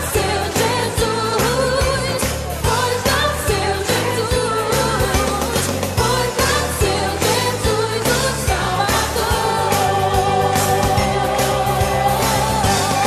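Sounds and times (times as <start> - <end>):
person singing: 0.0 - 13.0.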